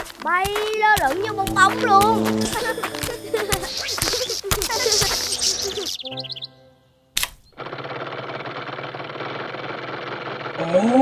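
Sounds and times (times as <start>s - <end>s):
warbling electronic chirping: 2.4s - 6.7s.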